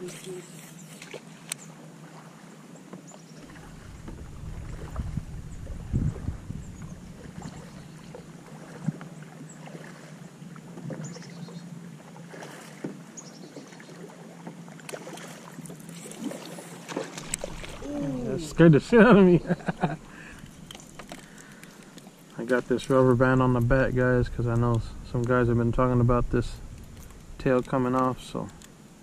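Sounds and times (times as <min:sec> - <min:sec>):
water lapping against kayak hull: 0:00.0 - 0:25.1
wind rumble on microphone: 0:03.6 - 0:07.9, 0:23.1 - 0:27.5.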